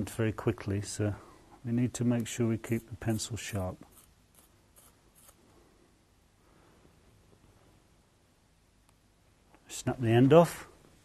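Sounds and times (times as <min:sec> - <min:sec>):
pencil being sharpened: 0:02.7 - 0:05.4.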